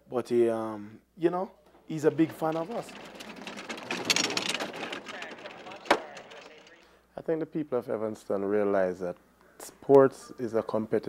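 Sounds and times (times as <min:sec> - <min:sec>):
bobsled runners rattling on ice: 0:01.6 - 0:06.9.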